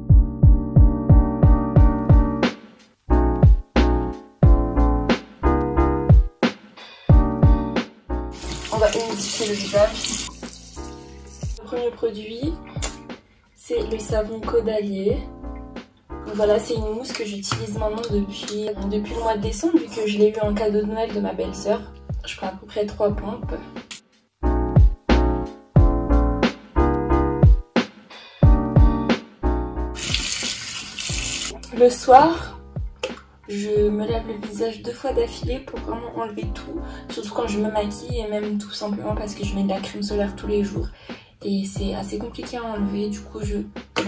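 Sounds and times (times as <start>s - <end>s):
keyboard music with sliding bass: 0.0s - 2.5s, 3.1s - 6.3s, 7.1s - 8.9s, 24.4s - 27.6s
piano music: 7.1s - 13.2s
hands being washed: 8.3s - 11.6s, 30.0s - 31.7s
tap running water into sink: 8.4s - 11.6s, 30.0s - 31.7s.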